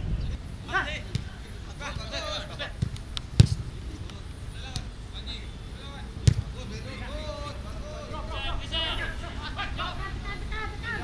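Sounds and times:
boot kicking football thud: 0:02.8 - 0:03.7, 0:06.2 - 0:06.5.

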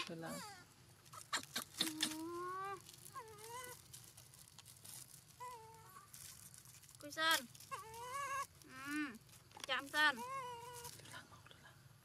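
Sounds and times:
monkeys cooing: 0:00.2 - 0:03.8
small clicks and crinkles: 0:01.0 - 0:11.2.

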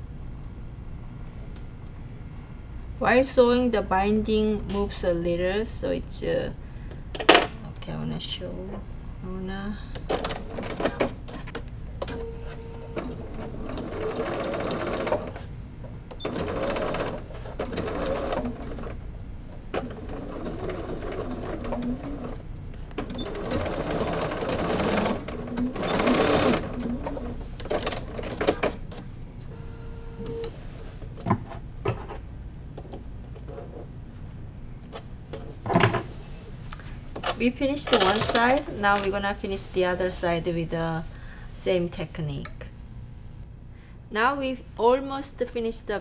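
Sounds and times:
electric sewing machine stitching: 0:12.2 - 0:15.5, 0:16.1 - 0:19.0, 0:19.7 - 0:22.4, 0:23.0 - 0:28.8.

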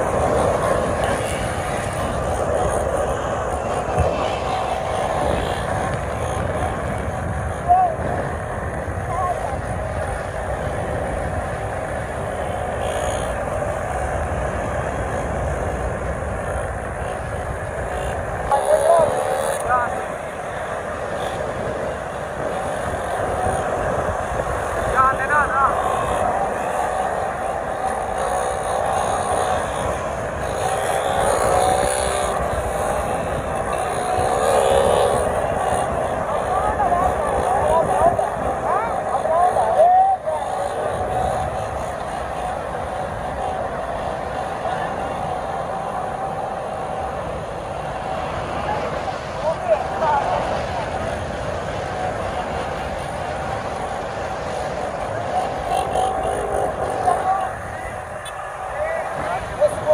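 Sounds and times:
motorcycle engines revving: 0:00.0 - 0:59.9
wind on microphone: 0:00.0 - 0:59.9.

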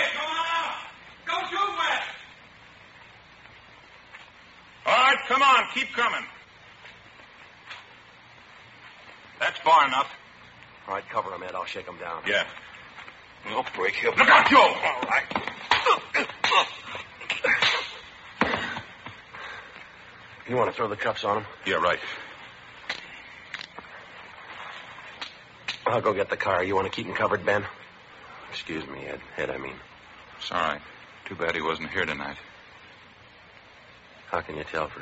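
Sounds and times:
faint recording hiss: 0:00.0 - 0:35.0.

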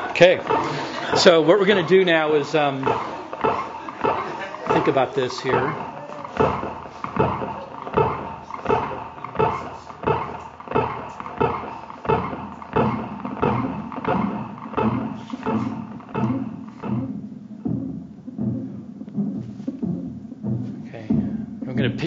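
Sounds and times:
heartbeat pulse: 0:00.0 - 0:22.0.

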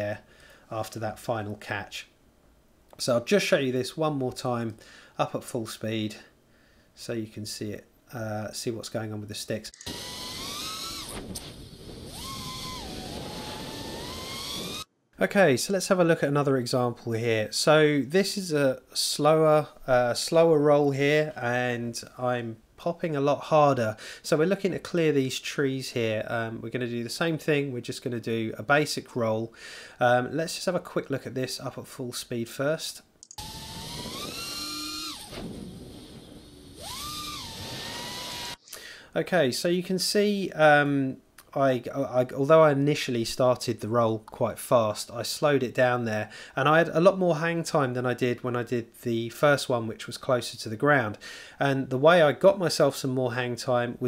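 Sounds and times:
drone motors whining: 0:09.8 - 0:14.9, 0:33.4 - 0:38.6.

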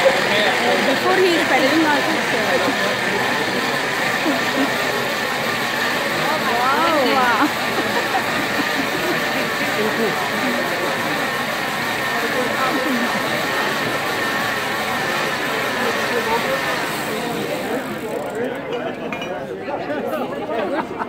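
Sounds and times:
bicycle blender whirring: 0:00.0 - 0:18.7
room chatter: 0:00.0 - 0:21.0.

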